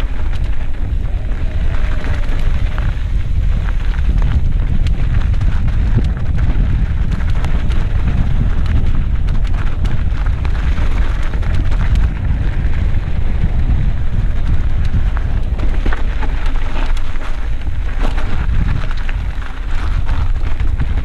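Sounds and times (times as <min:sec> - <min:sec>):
bike rattling on rocky trail: 0:00.0 - 0:21.0
wind buffeting microphone: 0:00.0 - 0:21.0.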